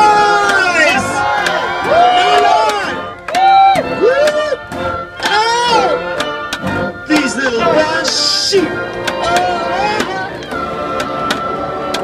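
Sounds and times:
bassoons and oboes playing melody: 0.0s - 12.0s.

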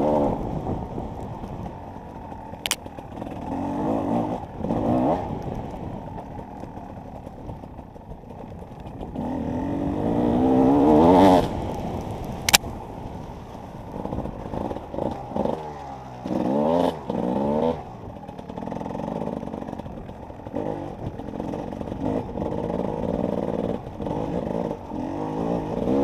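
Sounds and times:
motorcycle engine revving: 0.0s - 26.0s.

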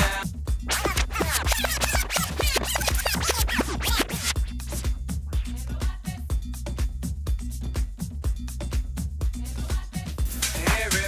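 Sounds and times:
vinyl scratch sweeps: 0.0s - 5.0s
house music: 0.0s - 11.0s.

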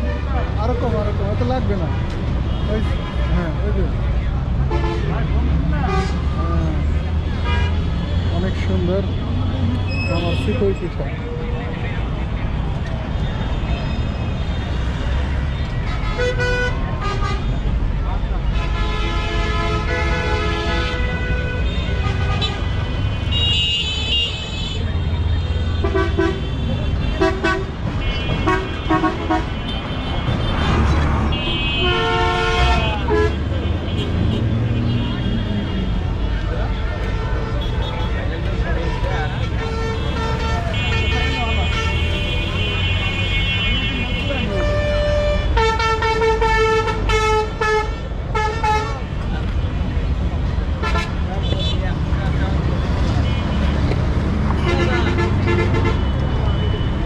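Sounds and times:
road traffic rumble: 0.0s - 57.0s
vehicle horns honking: 18.6s - 49.1s, 50.8s - 51.9s, 54.5s - 57.0s
long vehicle horn blast: 31.3s - 35.2s
vehicle horn toots: 31.3s - 35.5s.

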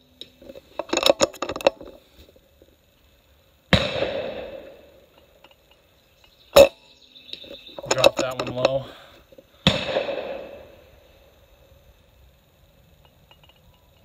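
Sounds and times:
air rifle shot reports: 3.7s - 4.9s, 9.6s - 10.9s.

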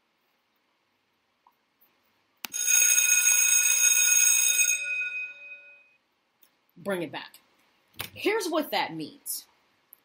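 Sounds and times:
alarm bell ringing: 2.5s - 6.0s.

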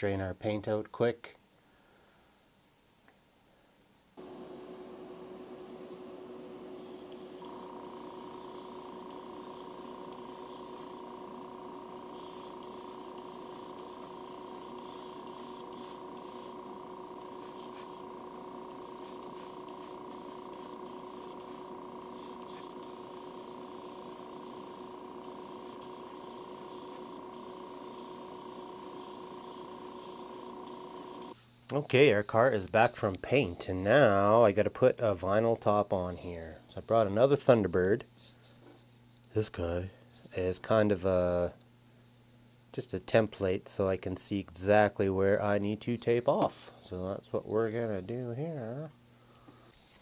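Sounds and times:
motor humming: 4.2s - 31.4s
airbrush spraying hiss: 6.7s - 31.4s.

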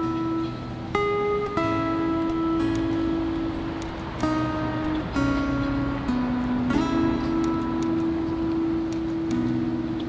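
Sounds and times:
acoustic guitar chord strummed: 0.0s - 10.0s.

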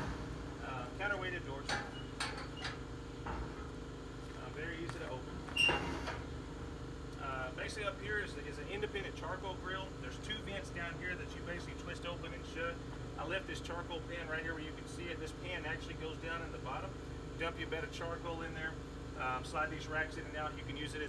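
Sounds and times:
heavy steel doors swinging open: 1.5s - 3.7s, 5.4s - 6.3s.

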